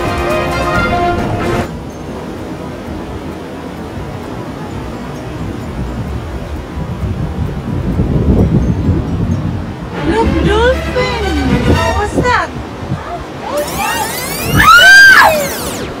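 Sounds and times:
background music: 0:00.0 - 0:01.7, 0:09.9 - 0:12.6
surf washing over rocks: 0:00.0 - 0:16.0
wind buffeting microphone: 0:01.7 - 0:16.0.

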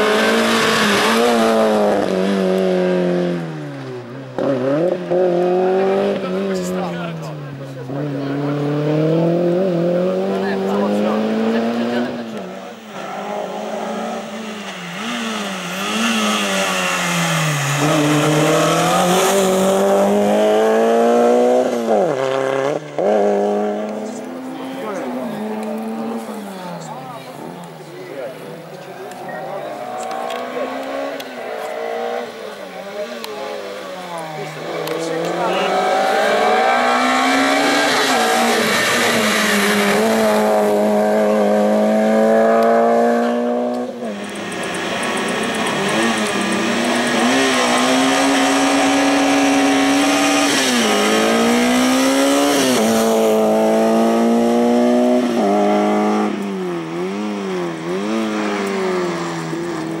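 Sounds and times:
car engine revving hard: 0:00.0 - 0:27.4, 0:29.5 - 1:00.0.

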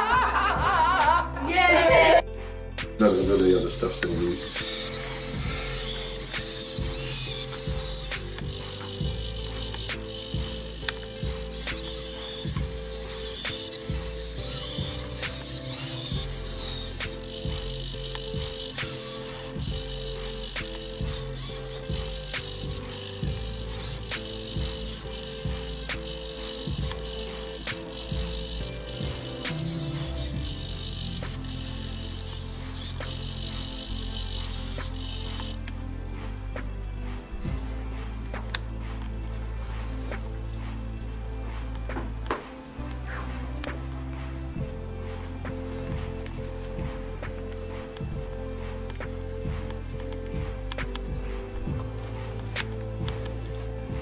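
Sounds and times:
background music: 0:00.0 - 0:54.0
servos whirring: 0:03.0 - 0:36.7, 0:37.3 - 0:54.0.

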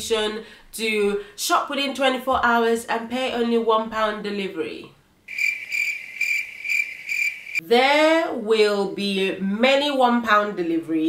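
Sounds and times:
crickets chirping: 0:05.3 - 0:07.6.

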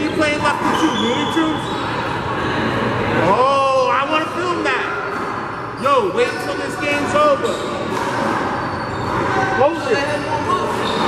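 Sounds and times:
ball bouncing on court: 0:06.9 - 0:09.4.

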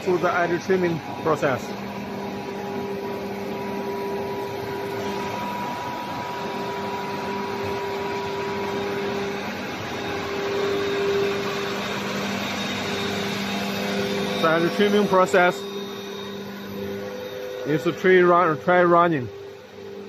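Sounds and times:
machinery mechanical hum: 0:00.0 - 0:20.0.

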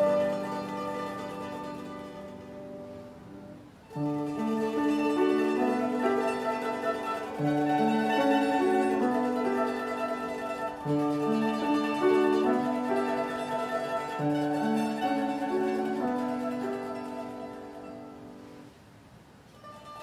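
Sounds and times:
mandolin ensemble: 0:00.0 - 0:18.8, 0:19.4 - 0:20.0.

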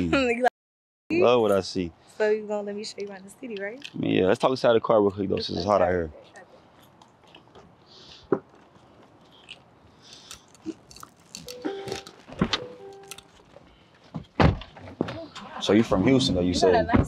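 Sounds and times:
car doors thudding shut: 0:14.1 - 0:15.2.

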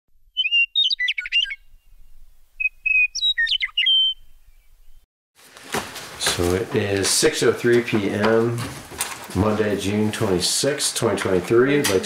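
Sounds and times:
songbird singing: 0:00.2 - 0:05.0.

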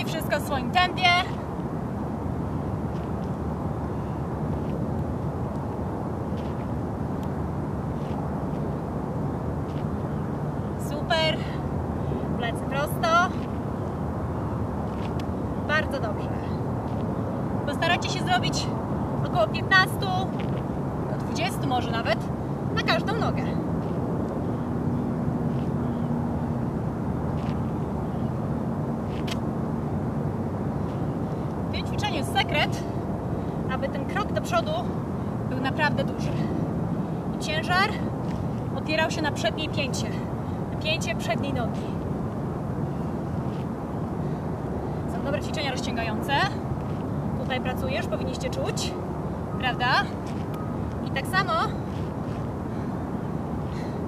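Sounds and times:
distant city traffic rumble: 0:00.0 - 0:54.0.

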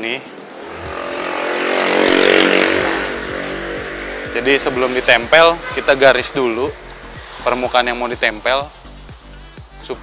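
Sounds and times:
motor vehicle passing: 0:00.2 - 0:08.3.

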